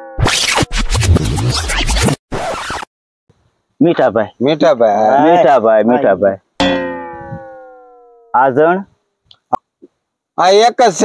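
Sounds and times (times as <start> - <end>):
record scratch: 0.0 - 2.9
falling tone: 6.6 - 8.7.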